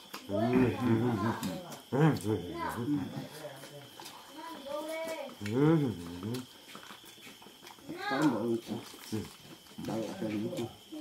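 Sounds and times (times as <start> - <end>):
small eating clicks: 0.0 - 11.0
man humming while eating: 5.4 - 6.5.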